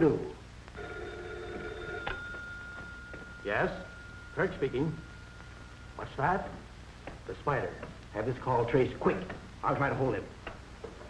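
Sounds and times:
telephone bell ringing: 0.8 - 6.0.

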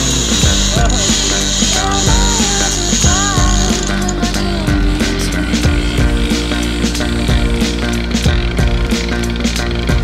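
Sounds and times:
fishing reel ratcheting: 0.0 - 9.8
background music with a beat: 0.0 - 10.0.

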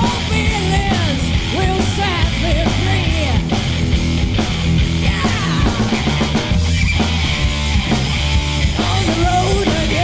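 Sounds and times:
person singing: 0.0 - 3.4, 5.0 - 6.0, 8.7 - 10.0
loud rock band playing: 0.0 - 10.0.

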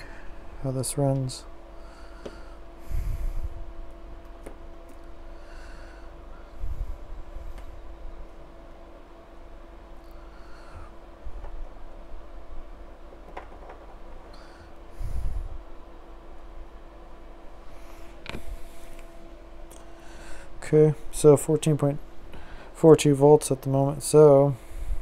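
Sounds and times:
steady electrical hum: 0.0 - 25.0
person breathing out through nose: 1.8 - 3.6, 5.2 - 7.6, 19.9 - 20.6.

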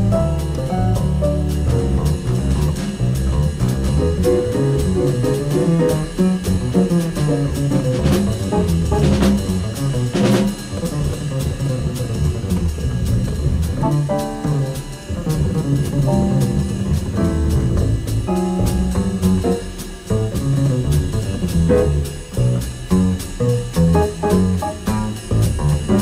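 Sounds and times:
acoustic jazz band playing: 0.0 - 26.0
double bass line: 0.0 - 26.0
cymbal crashes: 13.0 - 23.8.

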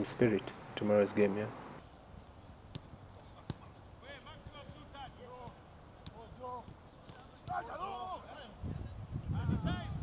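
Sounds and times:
distant players shouting: 3.2 - 10.0.

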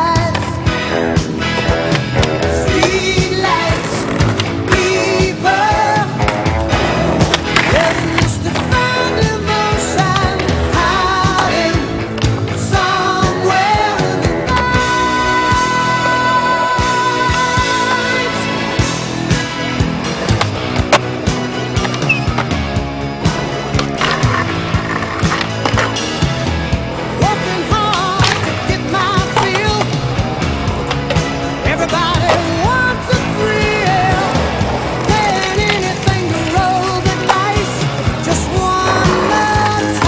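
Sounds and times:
song with singing voice: 0.0 - 0.8, 2.4 - 6.8, 7.6 - 19.4, 26.9 - 40.0
loud music with steady beat: 0.0 - 40.0
skateboard wheels rolling: 0.0 - 40.0
skateboard popping and landing: 6.2 - 9.1, 23.2 - 26.2, 27.2 - 40.0.

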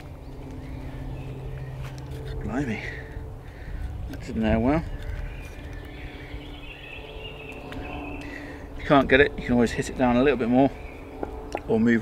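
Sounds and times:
faint birdsong: 0.0 - 12.0
low background rumble: 0.0 - 12.0.

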